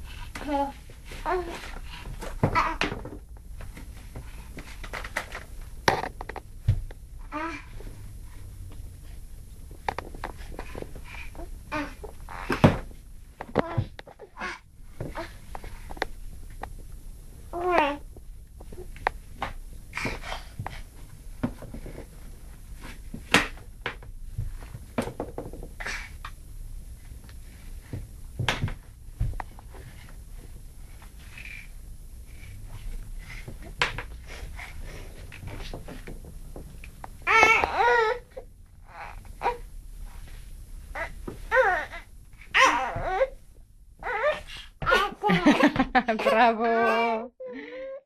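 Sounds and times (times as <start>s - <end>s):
toddler babbling and straining: 0.4s - 1.7s, 2.4s - 2.9s, 7.3s - 7.8s, 11.3s - 12.8s, 17.5s - 18.0s, 37.2s - 39.6s, 41.0s - 43.3s, 44.0s - 45.3s.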